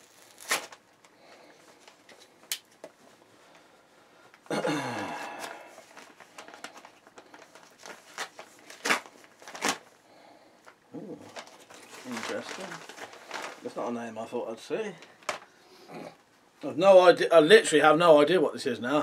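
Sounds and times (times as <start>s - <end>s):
packaging ripping tear: 0.0s - 1.0s, 5.4s - 9.9s, 11.2s - 13.7s
packaging crinkling and rustling: 0.0s - 3.0s, 5.3s - 10.0s, 10.6s - 15.6s.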